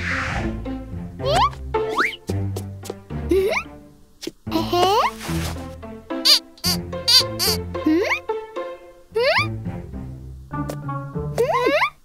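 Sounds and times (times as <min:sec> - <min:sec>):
children's background music: 0:00.4 - 0:12.0
toy bird whistle trills: 0:06.3 - 0:07.6.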